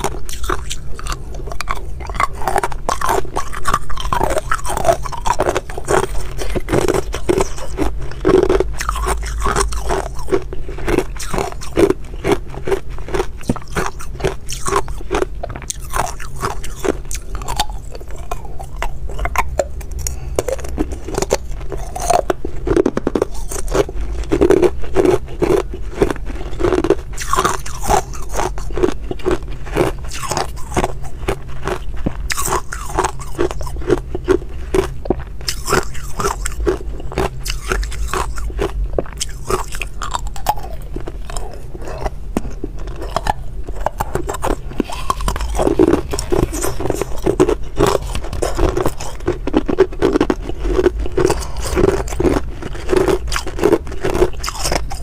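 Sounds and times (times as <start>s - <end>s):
chewing: 0.0s - 55.0s
ice cubes crunched between teeth: 0.0s - 55.0s.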